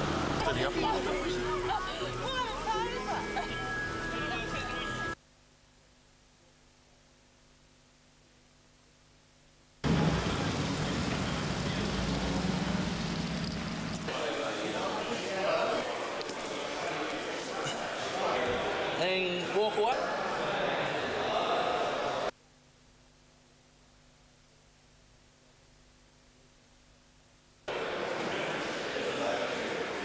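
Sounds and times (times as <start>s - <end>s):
people talking: 0.0s - 5.2s, 9.9s - 12.8s.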